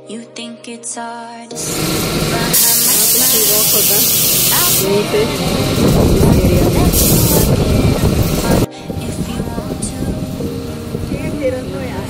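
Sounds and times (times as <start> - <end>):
pop song with singing: 0.0 - 12.0
spray hiss: 1.6 - 7.6
boat rushing with engine and spray: 1.6 - 12.0.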